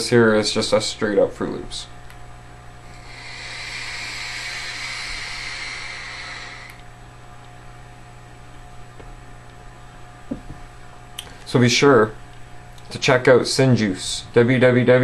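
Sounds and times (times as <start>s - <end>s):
vape airy hiss: 2.9s - 6.8s.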